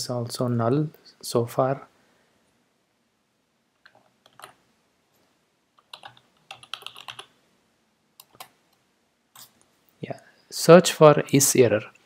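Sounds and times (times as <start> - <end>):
typing on computer keyboard: 3.8 - 4.6, 5.8 - 7.3, 8.2 - 8.6.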